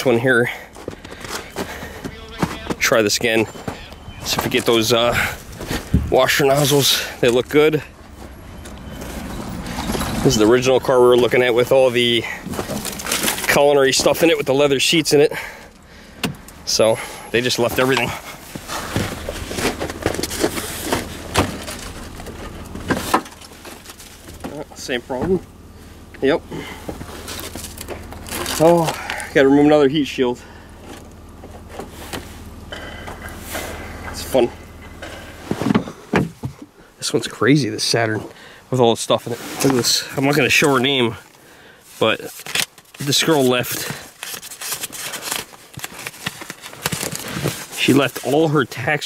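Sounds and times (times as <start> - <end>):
steady low rumble: 0.2 - 36.1
short rustling scrape: 17.8 - 24.3, 39.2 - 40.0.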